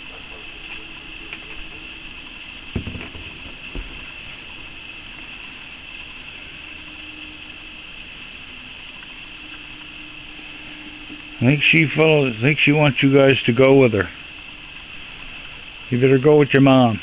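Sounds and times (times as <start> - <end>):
raccoons moving on wooden deck: 2.7 - 4.4
high-pitched drone: 6.1 - 14.0.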